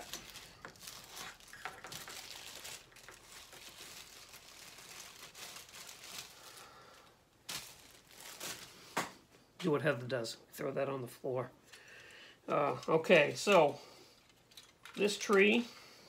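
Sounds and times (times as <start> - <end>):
plastic bag crinkling and tearing: 0.0 - 9.1.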